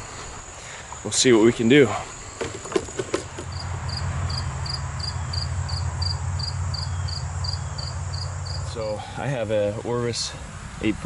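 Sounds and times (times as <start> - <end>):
cricket chirping: 0.0 - 9.5.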